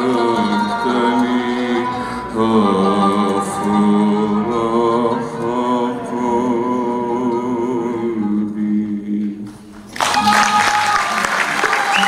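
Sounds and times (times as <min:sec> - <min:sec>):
man singing with vibrato: 0:00.0 - 0:11.2.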